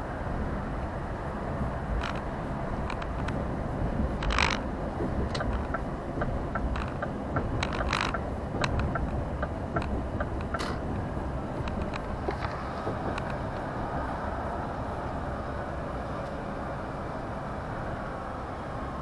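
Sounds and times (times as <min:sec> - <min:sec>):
engine and road rumble: 0:00.0 - 0:19.0
rattles: 0:04.2 - 0:10.8
sharp clicks: 0:04.2 - 0:10.8.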